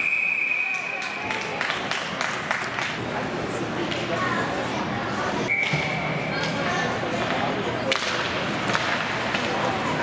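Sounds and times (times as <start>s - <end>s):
hockey stick hitting puck: 7.2s - 10.0s.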